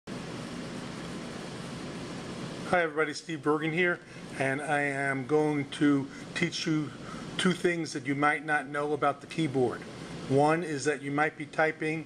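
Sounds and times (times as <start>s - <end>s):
steady background hiss: 0.1s - 12.0s.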